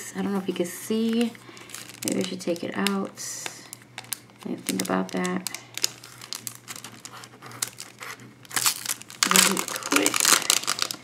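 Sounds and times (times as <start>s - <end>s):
packaging crinkling and rustling: 0.2s - 11.0s.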